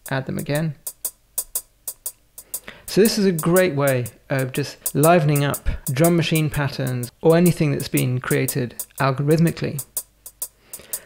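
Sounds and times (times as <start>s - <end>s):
hi-hat pattern: 0.0s - 11.0s.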